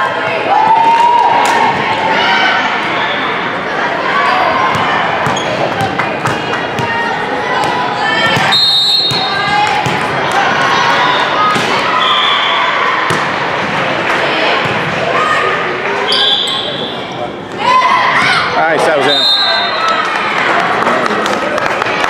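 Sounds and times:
many overlapping voices: 0.0s - 22.0s
sneaker squeaks and knocks: 4.7s - 6.9s, 8.2s - 10.0s.

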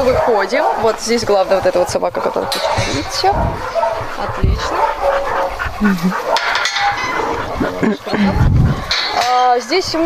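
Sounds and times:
dogs whining: 0.0s - 10.0s
wire-mesh gate clattering: 2.0s - 4.0s, 6.2s - 8.2s, 8.8s - 10.0s.

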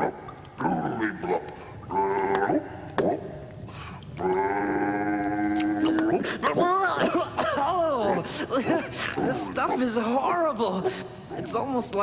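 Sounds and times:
wordless vocal sounds: 0.0s - 12.0s.

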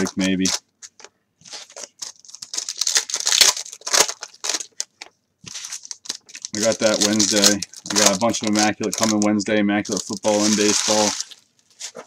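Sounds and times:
foil wrapper tearing and crinkling: 0.0s - 0.6s, 1.5s - 4.9s, 5.5s - 9.3s, 9.9s - 12.0s.

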